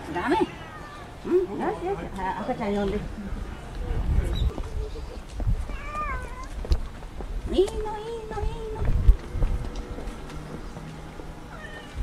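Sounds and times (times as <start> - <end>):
cat meowing: 5.7 - 6.6, 11.5 - 12.0
low rumbling bumps: 6.6 - 11.4.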